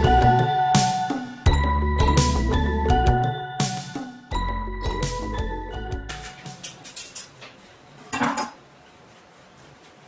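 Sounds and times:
knives clattering on wood: 0:06.3 - 0:08.6.

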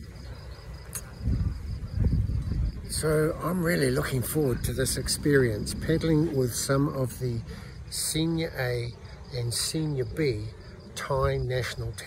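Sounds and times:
low microphone rumble: 0:00.0 - 0:11.7
insect chirping trill: 0:00.0 - 0:12.0.

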